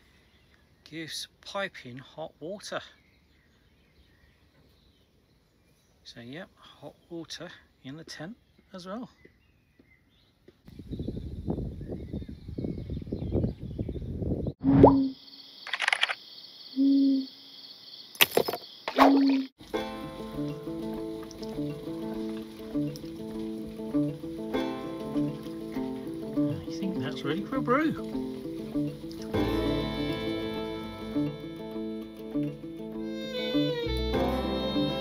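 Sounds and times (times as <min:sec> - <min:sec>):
background music with held notes: 0:19.6 - 0:35.0.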